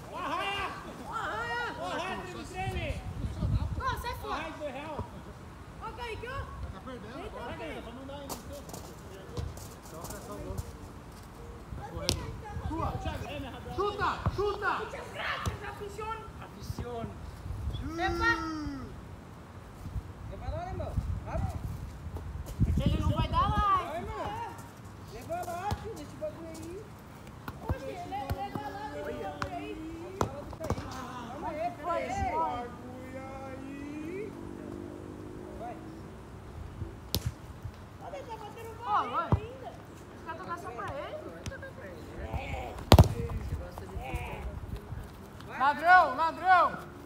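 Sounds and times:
foot kicking football: 37.1 - 37.4, 40.8 - 43.8
football being kicked: 37.1 - 37.4, 42.3 - 43.5.

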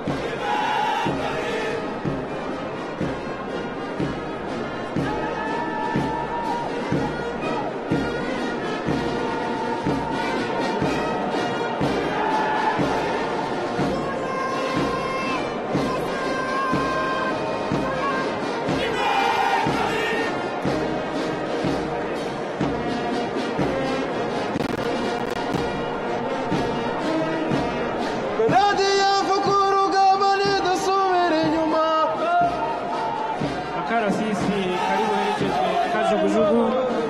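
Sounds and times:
crowd noise: 0.0 - 37.0
military brass band march: 0.0 - 37.0.

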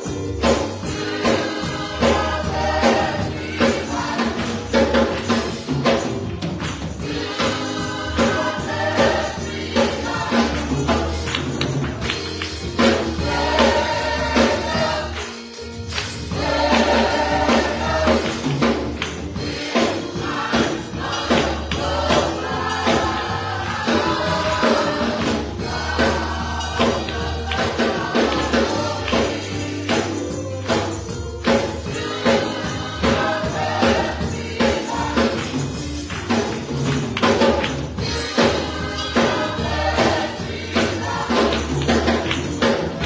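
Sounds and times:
gospel choir singing: 0.0 - 43.0
percussion beat: 0.0 - 43.0
hand claps: 6.5 - 7.0, 11.2 - 12.6, 15.1 - 16.3, 18.2 - 19.2, 35.4 - 38.0, 41.6 - 42.7.

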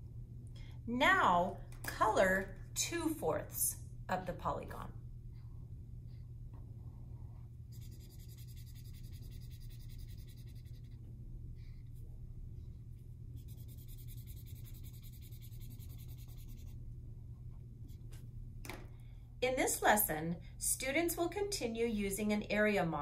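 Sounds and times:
steady low hum: 0.0 - 23.0
felt-tip marker coloring on paper: 7.7 - 11.0, 13.4 - 16.8.

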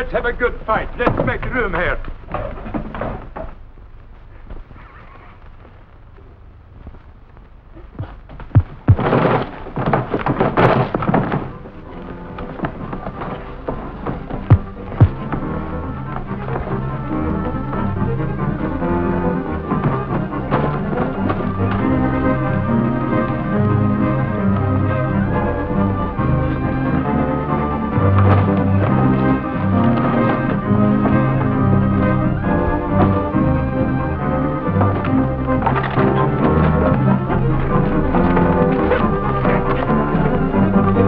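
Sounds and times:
noisy rush of scuffling: 6.7 - 16.8
punch thuds: 8.0 - 9.5, 14.5 - 15.3
dramatic orchestral music: 12.0 - 41.0.

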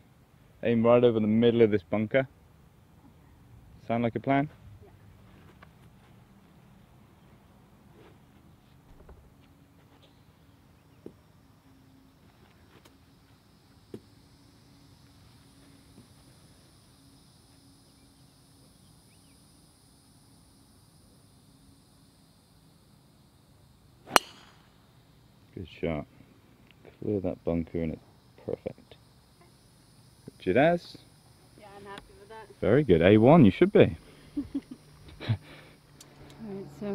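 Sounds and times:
outdoor ambience: 0.0 - 36.9
golf club striking ball: 24.1 - 24.8.

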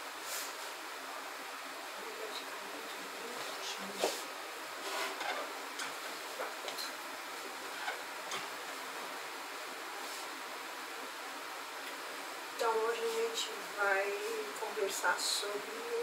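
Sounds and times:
steady hiss: 0.0 - 16.0.

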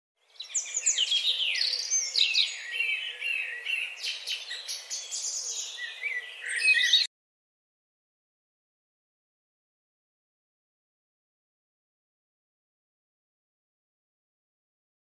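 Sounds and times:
birds chirping and whistling: 0.3 - 7.1.

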